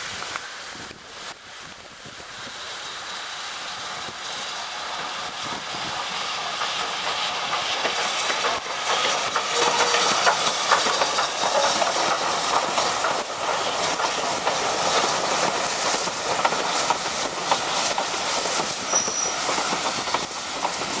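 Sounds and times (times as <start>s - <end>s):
steam hiss: 0.0s - 21.0s
train wheels clattering over rail joints: 4.9s - 21.0s
high squeal: 9.0s - 12.0s, 18.7s - 19.8s.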